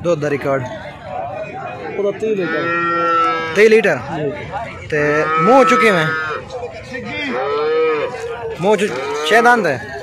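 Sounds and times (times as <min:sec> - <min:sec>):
cow mooing: 0:02.4 - 0:03.6, 0:05.1 - 0:06.4, 0:07.3 - 0:08.2.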